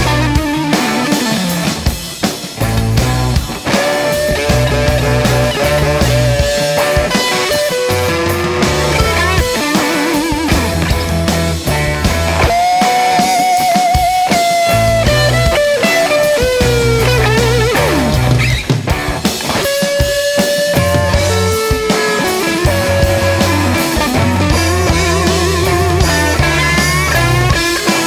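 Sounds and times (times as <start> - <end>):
bass guitar line: 0.0 - 28.0
drum kit: 0.0 - 28.0
lead electric guitar: 0.0 - 28.0.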